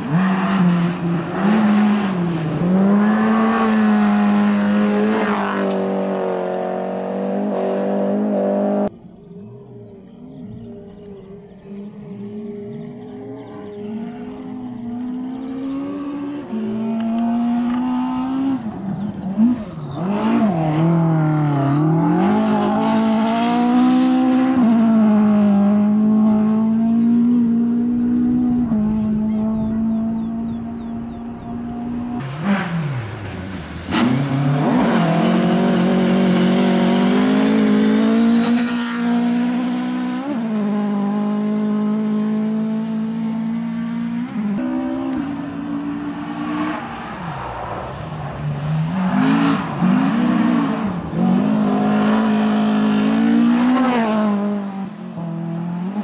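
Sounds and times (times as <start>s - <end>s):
rally car engine at high revs: 0.0s - 8.9s, 14.9s - 56.0s.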